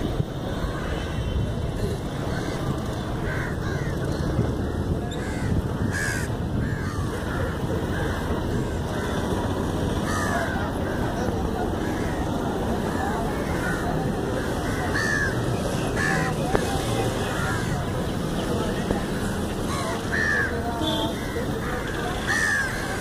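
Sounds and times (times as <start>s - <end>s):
crows cawing: 2.3s - 9.4s, 10.0s - 11.1s, 13.2s - 16.4s, 19.7s - 20.6s, 21.2s - 23.0s.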